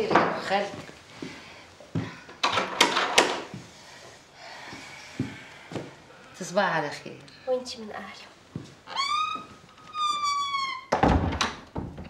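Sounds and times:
door hinges creaking: 8.8 - 12.0
door closing thump: 10.9 - 12.0.

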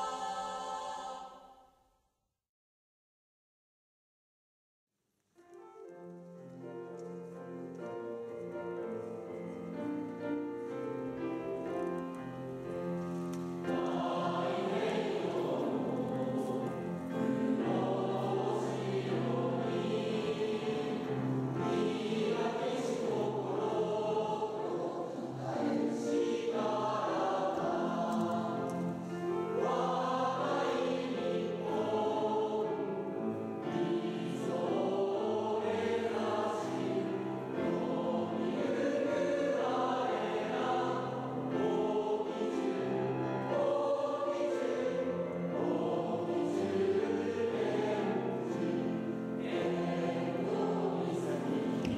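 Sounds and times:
choir singing: 0.0 - 1.8, 6.7 - 51.9.

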